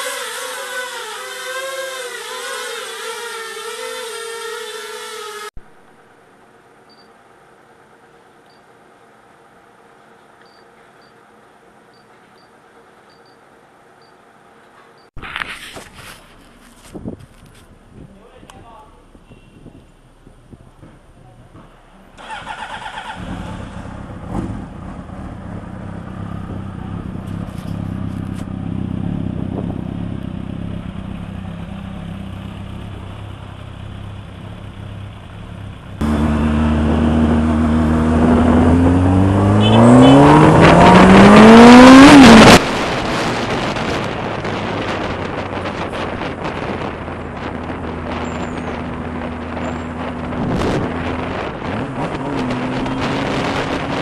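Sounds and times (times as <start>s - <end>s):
motorcycle engine idling and revving: 0.0s - 5.8s, 15.9s - 54.0s.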